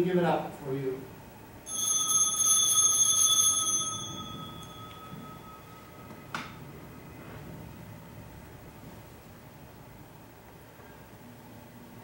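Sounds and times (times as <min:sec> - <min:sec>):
altar bell chiming: 0:01.6 - 0:06.3.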